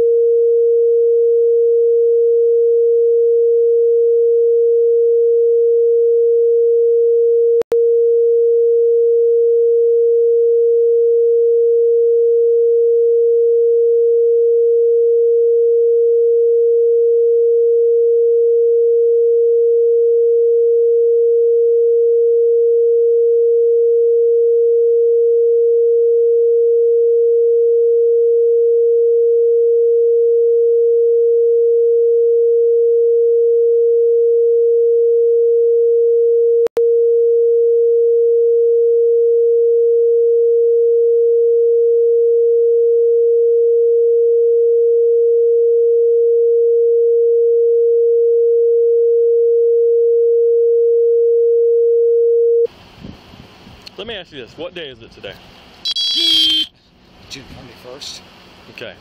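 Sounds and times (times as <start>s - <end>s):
steady beep tone: 55.9s - 56.7s.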